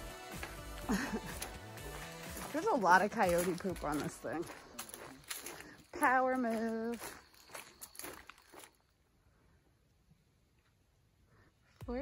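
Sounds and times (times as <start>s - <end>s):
footsteps on leafy dirt trail: 0.0s - 9.0s.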